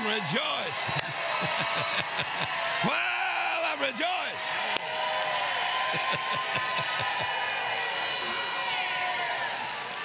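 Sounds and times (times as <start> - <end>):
congregation clapping: 0.0 - 3.0, 3.6 - 10.0
man laughing: 1.6 - 2.5, 6.0 - 7.2.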